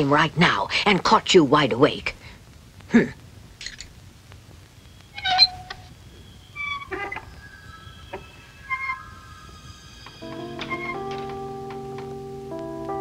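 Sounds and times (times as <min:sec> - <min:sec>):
wooden door creaking open: 0:05.2 - 0:05.9, 0:06.6 - 0:07.4, 0:10.0 - 0:12.3.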